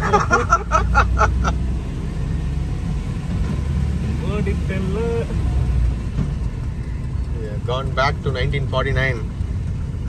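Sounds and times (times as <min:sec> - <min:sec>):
car engine droning: 0:00.0 - 0:10.0.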